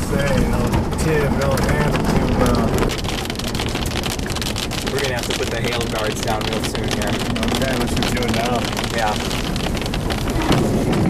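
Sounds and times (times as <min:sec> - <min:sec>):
low rumble: 0:00.0 - 0:11.0
rain and debris ticking on windshield: 0:00.0 - 0:11.0
wind noise: 0:00.0 - 0:11.0.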